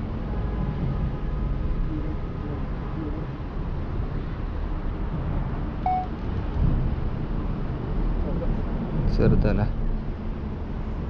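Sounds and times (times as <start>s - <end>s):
wind buffeting microphone: 0.1s - 11.0s
short high beep: 5.8s - 6.1s.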